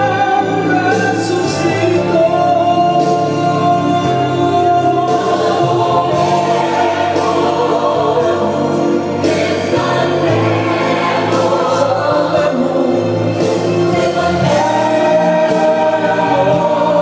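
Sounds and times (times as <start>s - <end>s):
choir singing gospel song: 0.0s - 17.0s.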